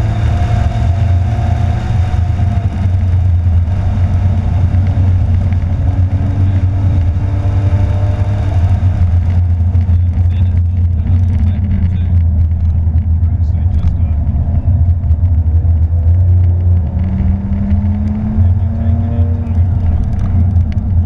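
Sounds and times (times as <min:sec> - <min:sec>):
car engine drone in cabin: 0:00.0 - 0:21.0
road noise: 0:00.0 - 0:21.0.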